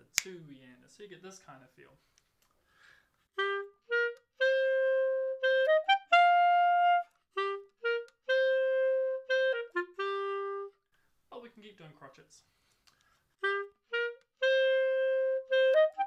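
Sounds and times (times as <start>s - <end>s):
clarinet playing: 3.3s - 10.9s, 13.4s - 16.0s.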